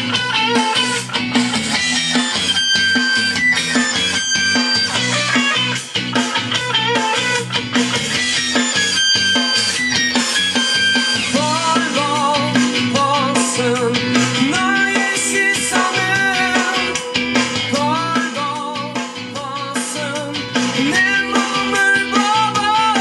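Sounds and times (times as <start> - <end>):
guitar music from speakers: 0.0 - 23.0.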